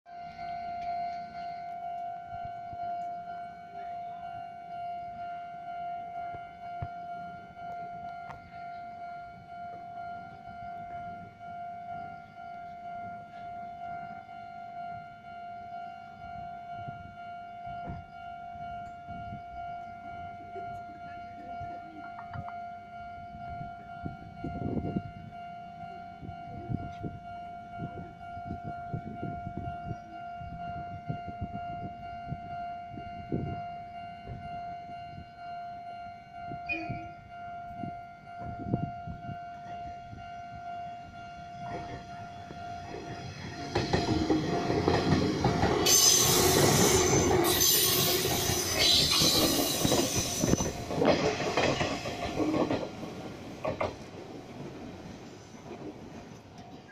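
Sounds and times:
level crossing alarm tone: 0.2s - 53.3s.

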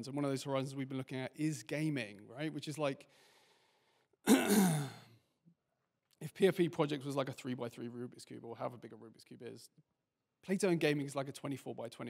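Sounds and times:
man groaning exhalation: 4.3s - 5.0s.

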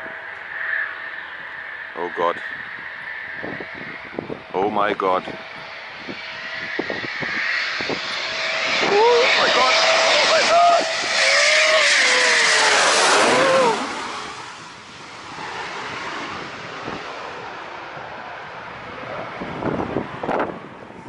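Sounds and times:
jet engine roar passing overhead: 0.0s - 21.0s.

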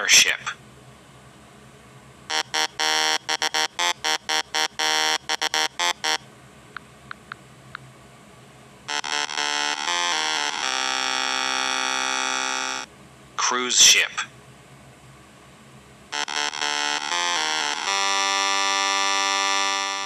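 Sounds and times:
buzzing horn blasts: 2.3s - 6.2s, 8.9s - 12.9s, 16.1s - 20.0s.

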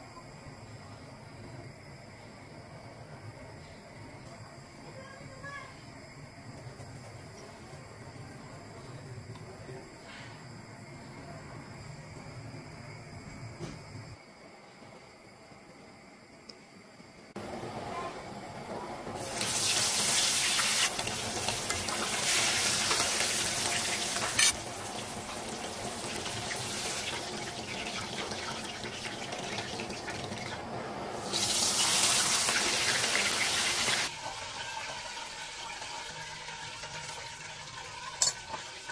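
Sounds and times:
fish sizzling in hot oil: 19.2s - 38.9s.

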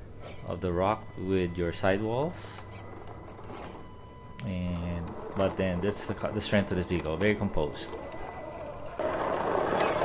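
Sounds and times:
rc car motor and drivetrain: 4.9s - 10.0s.

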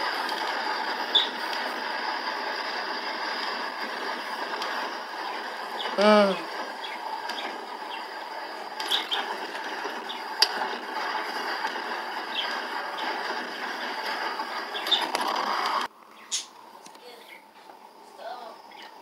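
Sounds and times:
sharp clicks and rattles: 0.0s - 17.0s.

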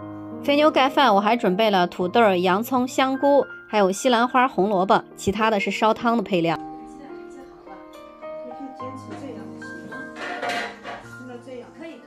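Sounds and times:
background music: 0.0s - 12.0s
metal utensil scraping on griddle: 10.1s - 11.1s.

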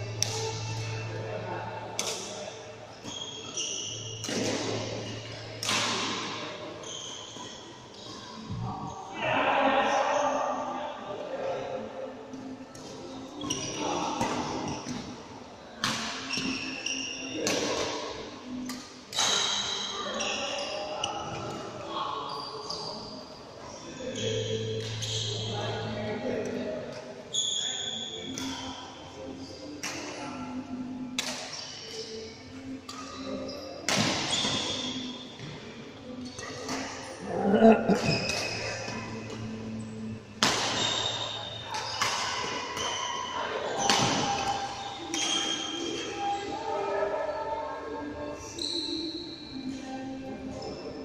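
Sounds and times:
people talking: 0.0s - 3.6s, 7.9s - 15.0s, 17.2s - 31.2s, 36.0s - 40.2s, 40.9s - 51.0s
rackets striking shuttlecock: 0.2s - 1.0s, 4.2s - 4.8s, 5.6s - 6.4s, 31.2s - 32.0s, 33.8s - 35.0s
shoe squeaks on court floor: 2.9s - 6.1s, 6.8s - 8.4s, 13.3s - 14.0s, 16.2s - 17.8s, 18.5s - 21.6s, 22.2s - 23.4s, 24.0s - 25.8s, 27.3s - 28.8s, 31.2s - 32.3s, 32.9s - 35.5s, 37.9s - 39.1s, 40.4s - 46.4s, 48.5s - 49.6s.

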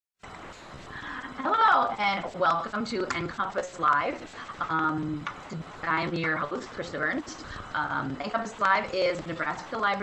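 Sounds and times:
recording hiss: 0.2s - 10.0s
woman speaking: 1.0s - 10.0s.

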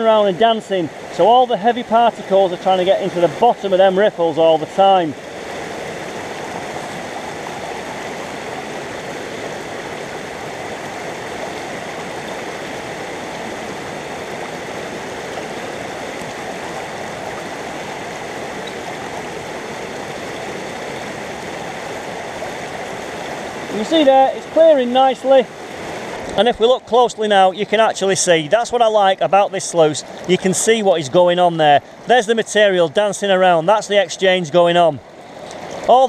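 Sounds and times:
river water rushing: 0.0s - 36.0s.

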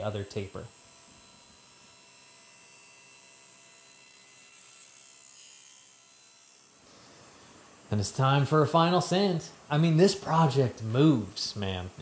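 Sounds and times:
table saw running: 0.0s - 6.8s.

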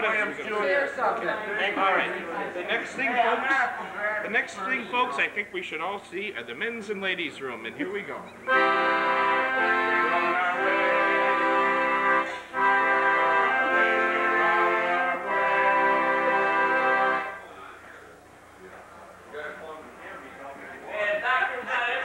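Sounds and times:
accordion held chords: 8.5s - 17.4s.

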